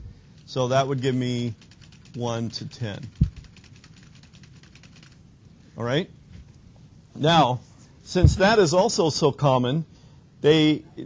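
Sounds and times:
keyboard keys clicking: 3.1s - 5.2s
dull low thump: 8.2s - 8.6s.

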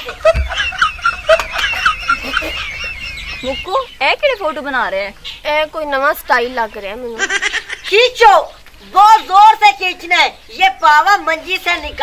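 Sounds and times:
poultry clucking: 0.0s - 9.4s.

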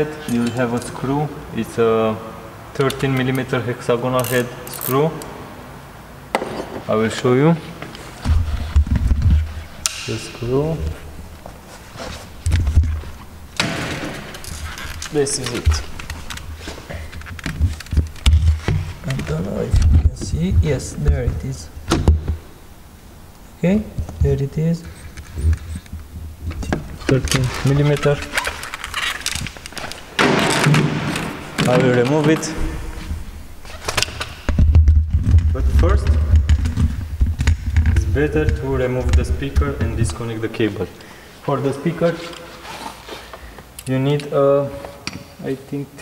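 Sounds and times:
footsteps: 7.6s - 13.3s, 14.0s - 21.3s
rustling scrape: 10.9s - 13.3s, 42.1s - 43.3s
camera handling rumble: 14.2s - 20.2s, 25.0s - 30.2s.

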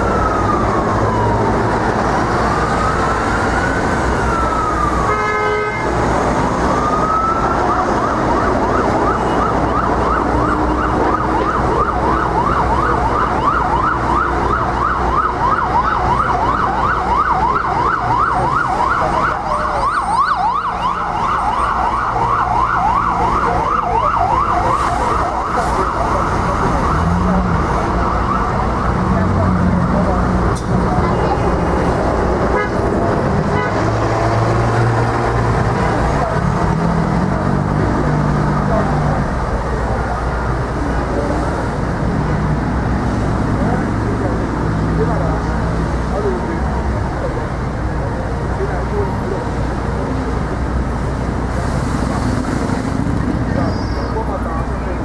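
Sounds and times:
ambulance siren: 0.0s - 51.4s
bus engine: 0.0s - 55.0s
street traffic noise: 0.0s - 55.0s.

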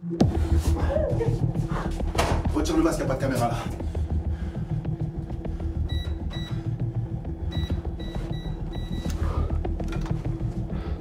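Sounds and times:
keypad beeps: 5.9s - 6.6s, 7.5s - 9.2s.

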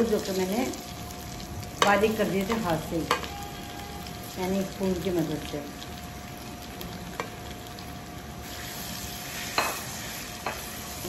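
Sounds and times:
potatoes sizzling in hot oil: 0.0s - 11.0s.

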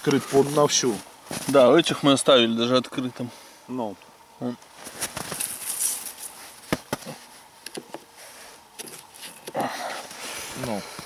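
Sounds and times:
rustling: 4.7s - 10.7s.

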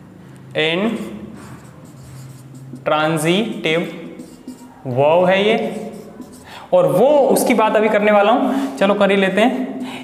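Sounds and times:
marker writing on whiteboard: 0.8s - 8.0s, 9.3s - 10.0s.

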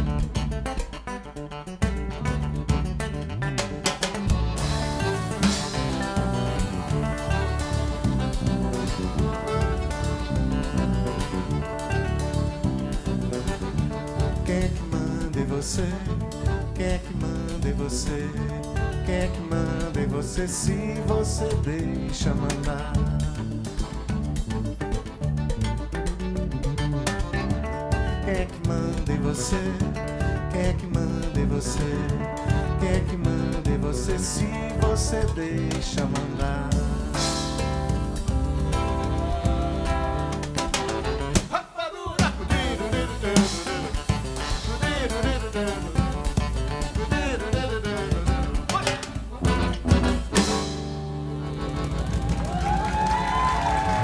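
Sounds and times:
accordion: 0.0s - 41.6s, 42.2s - 54.0s
acoustic guitar: 0.0s - 54.0s
live band playing: 0.0s - 54.0s
man singing: 13.7s - 24.1s, 28.0s - 49.7s.

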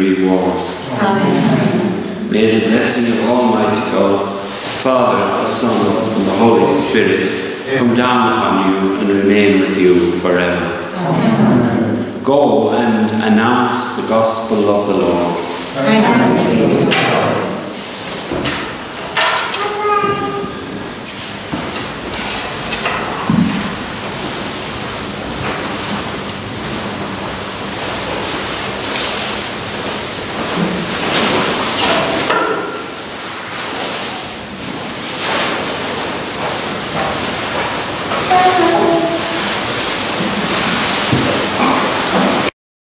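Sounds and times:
murmured voices: 0.0s - 17.8s, 38.3s - 39.5s
room noise hiss: 0.0s - 42.5s.

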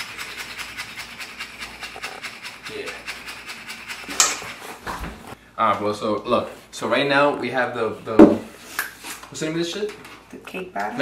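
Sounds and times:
whisk scraping a metal bowl: 0.0s - 4.8s.

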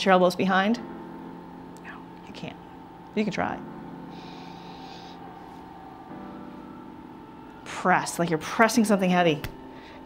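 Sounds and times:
low room hum: 0.0s - 10.0s
soft breathy hiss: 4.0s - 5.4s.

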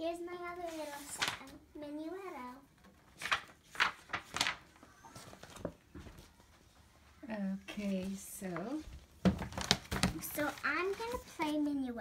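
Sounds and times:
sheet music pages rustling: 0.4s - 1.6s, 2.9s - 6.8s, 7.7s - 11.8s.

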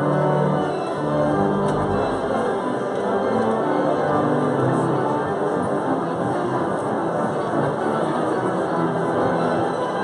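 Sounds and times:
pipe organ playing held notes: 0.0s - 5.3s.

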